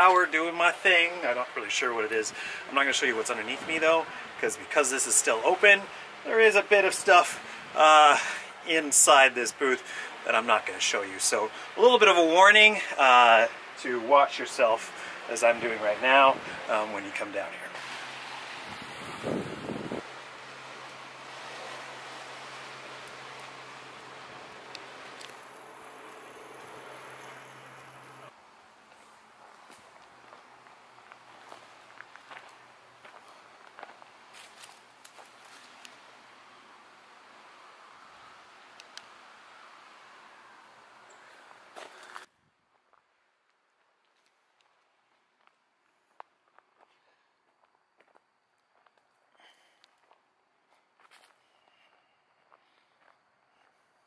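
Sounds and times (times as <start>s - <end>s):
rustles: 0.0s - 54.0s
low hum: 17.8s - 28.3s
footsteps on gravel: 28.9s - 35.8s, 41.8s - 42.3s, 49.9s - 53.2s.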